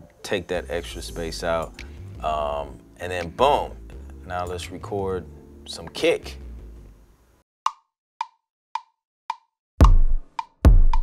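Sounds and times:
deep kick drum: 0:09.8 - 0:11.0.

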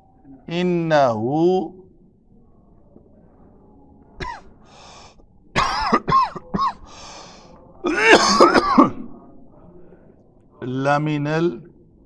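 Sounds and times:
man coughing: 0:04.2 - 0:04.4, 0:05.6 - 0:06.8, 0:07.9 - 0:09.1.

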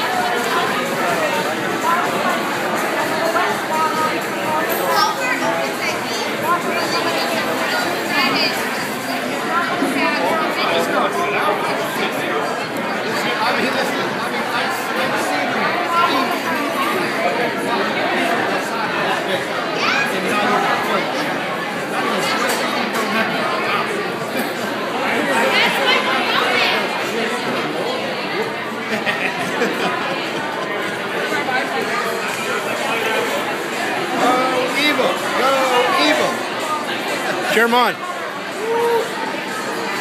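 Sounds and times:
babble of restaurant conversation: 0:00.0 - 0:40.0.

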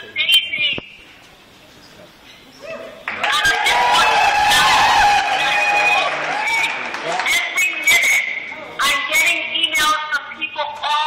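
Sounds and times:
low room murmur: 0:00.0 - 0:11.0
crowd cheering and whooping: 0:03.2 - 0:07.2.

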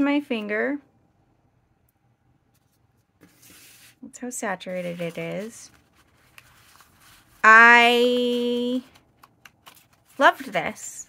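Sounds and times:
paper cards rustling: 0:02.5 - 0:11.0.

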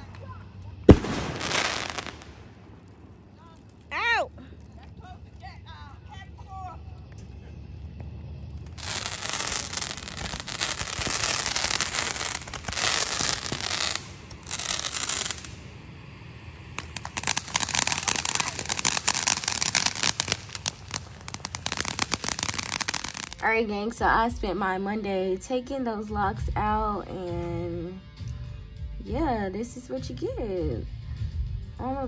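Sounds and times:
fireworks rapid crackling: 0:00.0 - 0:15.9, 0:16.6 - 0:23.6
fireworks hissing spray: 0:00.9 - 0:02.5, 0:08.6 - 0:23.4.

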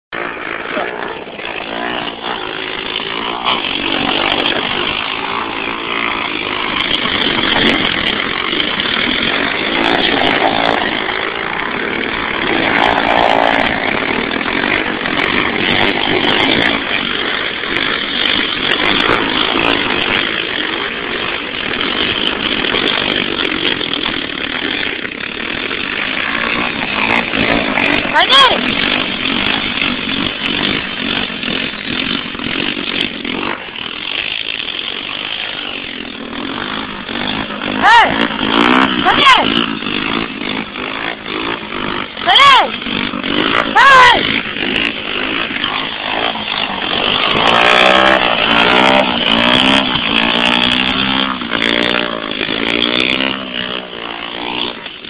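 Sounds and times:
quad engine buzzing: 0:00.1 - 0:55.0.

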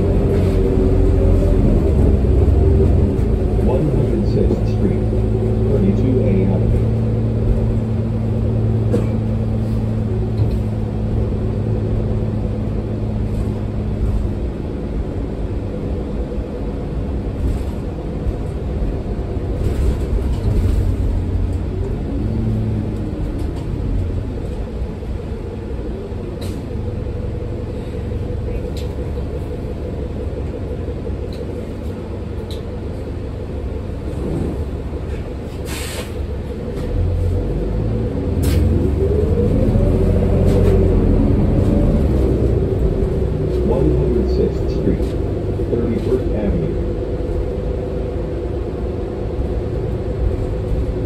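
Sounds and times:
bus diesel engine drone: 0:00.0 - 0:51.0
low road rumble: 0:00.0 - 0:51.0.

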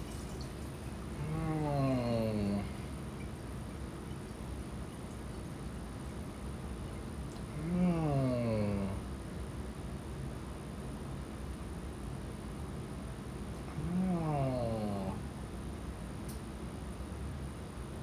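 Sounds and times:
person groaning in pain: 0:01.2 - 0:02.8, 0:07.5 - 0:09.0, 0:13.8 - 0:15.2.

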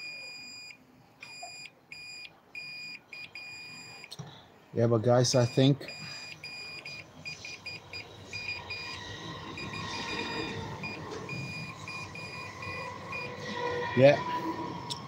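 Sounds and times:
multimeter continuity beep: 0:00.0 - 0:04.1, 0:05.4 - 0:13.4.

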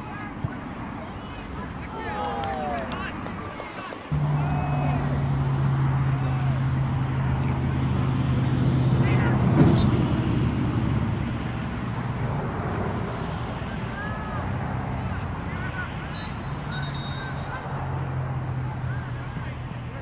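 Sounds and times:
faint distant shouts: 0:00.0 - 0:07.8, 0:13.6 - 0:18.0
low motor hum: 0:04.1 - 0:09.0.

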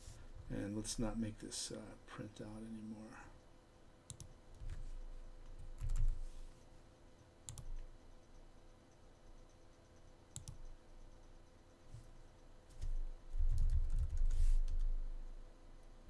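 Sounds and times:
computer mouse clicks: 0:04.1 - 0:04.8, 0:07.4 - 0:07.9, 0:10.3 - 0:10.7
keyboard clicks: 0:04.1 - 0:04.8, 0:05.4 - 0:06.1, 0:07.5 - 0:07.9, 0:10.3 - 0:10.6, 0:12.7 - 0:14.9.

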